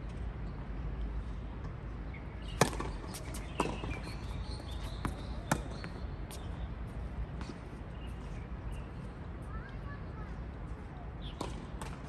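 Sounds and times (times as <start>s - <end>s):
tennis ball struck by racquets: 2.4s - 6.0s
tennis ball bouncing on hard court: 2.4s - 6.4s.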